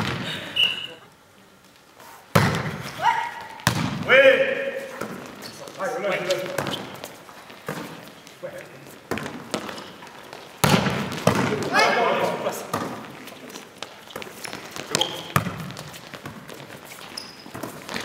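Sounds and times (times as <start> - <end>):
players shouting calls: 3.0 - 5.0, 11.4 - 12.7.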